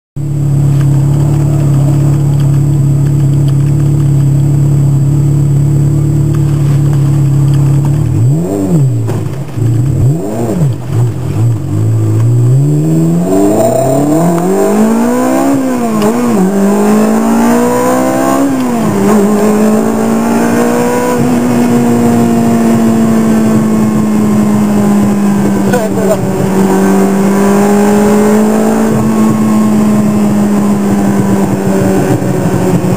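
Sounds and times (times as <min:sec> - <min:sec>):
sports car engine revving: 0:00.2 - 0:32.9.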